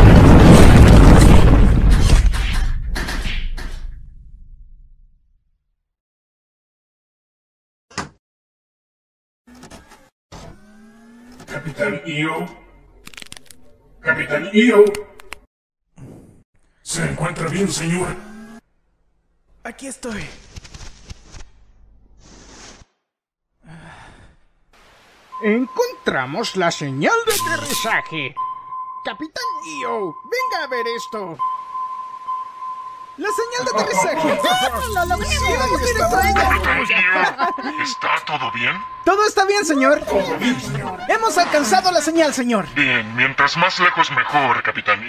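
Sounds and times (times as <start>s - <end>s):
debris flying: 0.0s - 4.2s
spaceship crash and explosion: 0.0s - 5.3s
man sighing breathily: 23.6s - 24.5s.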